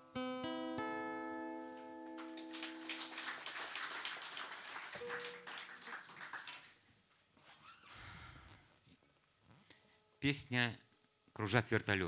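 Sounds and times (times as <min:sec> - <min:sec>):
audience applauding: 0:02.2 - 0:06.8.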